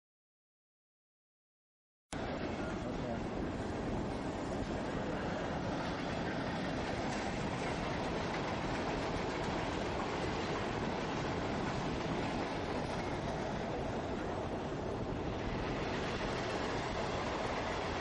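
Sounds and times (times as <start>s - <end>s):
train rumbling along track: 2.2s - 18.0s.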